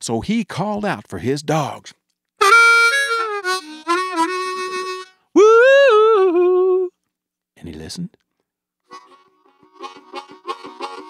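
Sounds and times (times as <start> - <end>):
harmonica playing: 2.4 - 6.9, 8.8 - 11.0.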